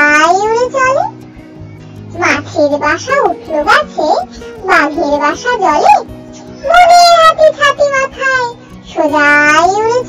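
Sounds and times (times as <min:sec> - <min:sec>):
child singing: 0:00.0 - 0:01.1, 0:02.2 - 0:06.0, 0:06.6 - 0:10.0
backing track music: 0:00.0 - 0:10.0.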